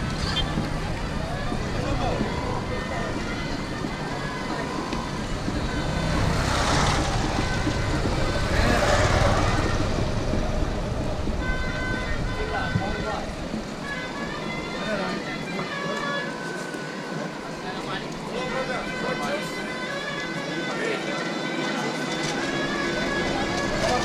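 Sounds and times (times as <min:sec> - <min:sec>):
motor traffic: 0:00.0 - 0:24.0.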